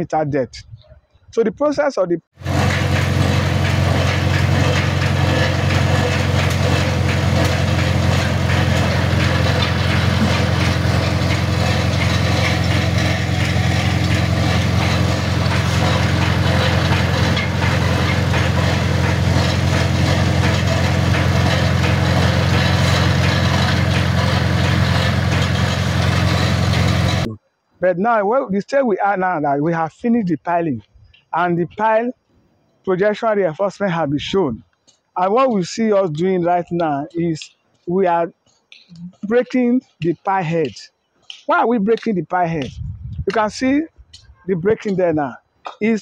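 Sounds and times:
heavy machinery engine droning: 2.4s - 27.4s.

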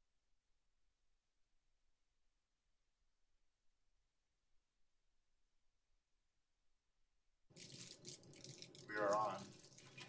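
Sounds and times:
faint rustling and handling: 7.5s - 10.0s
person speaking: 8.7s - 9.7s.

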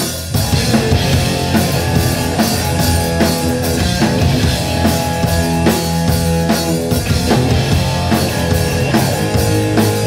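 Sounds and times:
drum kit beat: 0.0s - 10.0s
electric bass: 0.0s - 10.0s
electric guitar: 0.0s - 10.0s.

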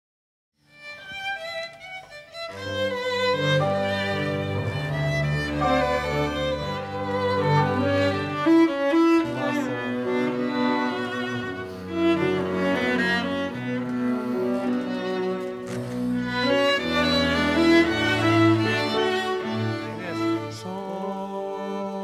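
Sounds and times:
violin melody: 0.6s - 22.0s
cello and double bass lines: 2.3s - 22.0s.

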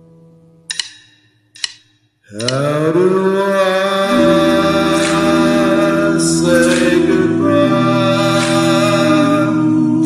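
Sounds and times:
sharp tick-like clicks: 0.7s - 2.6s
held musical note: 4.1s - 9.2s.

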